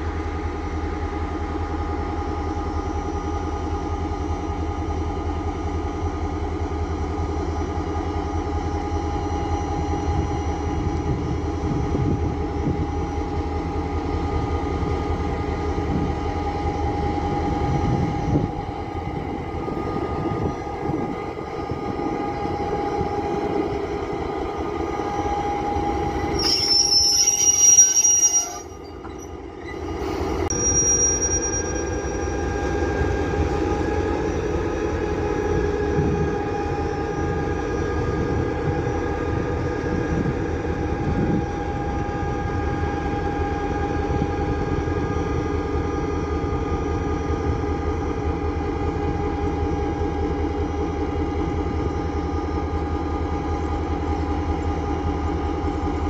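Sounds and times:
diesel locomotive engine rumbling: 0.0 - 56.0
high metallic squeal: 26.3 - 29.8, 30.5 - 32.3.

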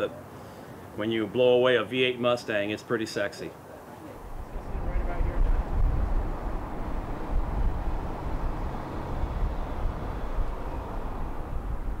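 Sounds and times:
wind noise: 4.2 - 12.0
car road rumble: 4.3 - 12.0.

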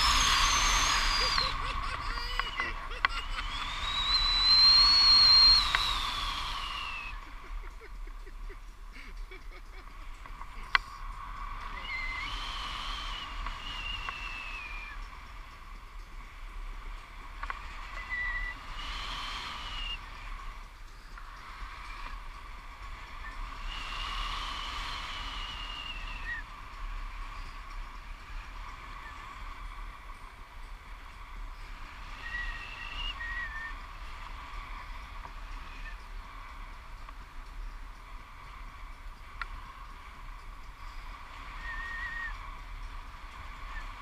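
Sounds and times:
thin high whistle-like tone: 0.0 - 8.1, 8.9 - 44.0
wind rushing over microphone: 0.0 - 44.0.

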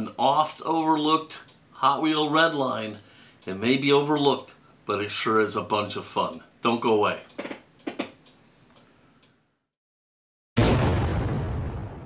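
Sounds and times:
low room noise: 0.0 - 9.7
faint ticks: 7.2 - 9.4.

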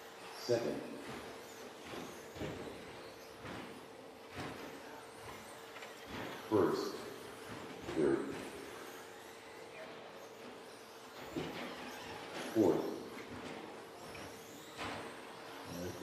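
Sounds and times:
rc car motors whirring: 0.0 - 16.0.

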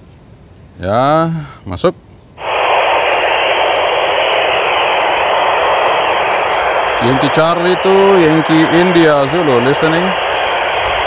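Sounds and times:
radio static hiss: 2.4 - 11.0.

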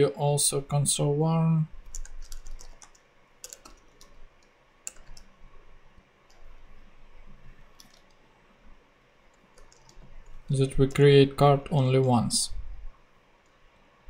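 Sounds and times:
computer keyboard clicks: 1.9 - 5.3, 7.7 - 8.2, 9.3 - 10.1.

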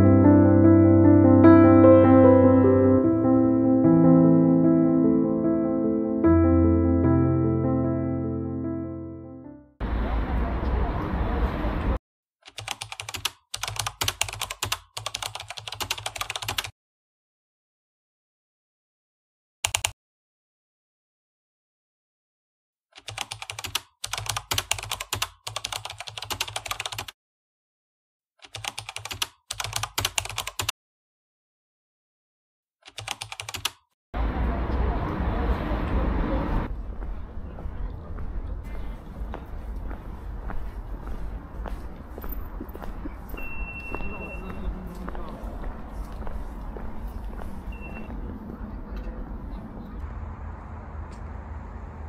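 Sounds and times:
short high electronic beep: 43.4 - 44.6.

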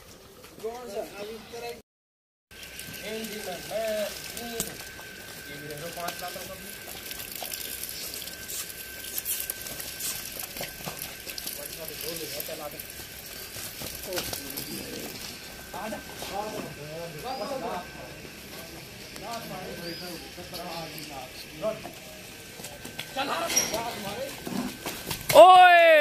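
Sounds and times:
faint high whine: 2.6 - 26.0
men calling out: 25.3 - 26.0.

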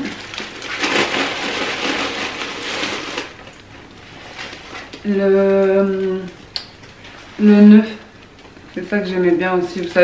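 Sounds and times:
plastic packaging crinkling: 0.0 - 10.0.

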